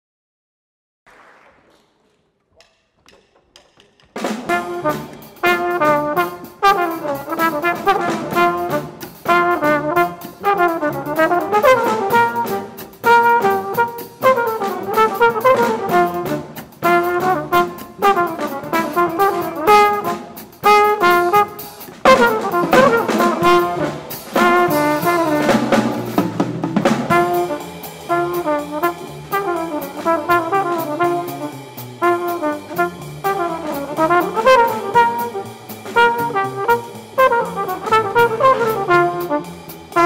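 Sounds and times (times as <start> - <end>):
double bass: 3.1 - 40.0
jazz combo music: 4.2 - 40.0
small horn melody: 4.5 - 25.8, 27.1 - 40.0.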